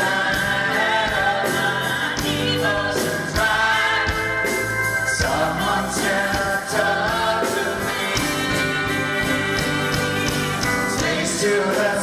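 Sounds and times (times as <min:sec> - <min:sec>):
country band playing live: 0:00.0 - 0:12.0
person singing: 0:00.0 - 0:12.0.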